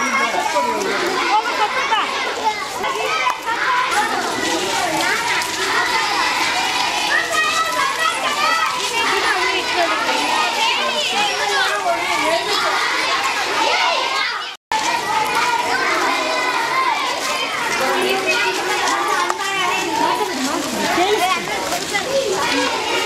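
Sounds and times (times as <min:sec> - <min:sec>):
crowd of children talking: 0:00.0 - 0:23.0.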